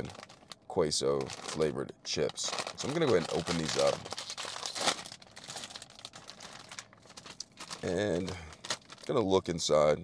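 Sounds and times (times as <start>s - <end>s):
plastic chip bag crinkling: 0.0s - 9.4s.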